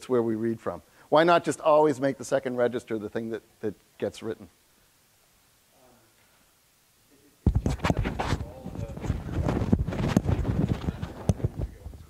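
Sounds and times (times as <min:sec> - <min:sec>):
microphone handling noise: 0:07.4 - 0:12.0.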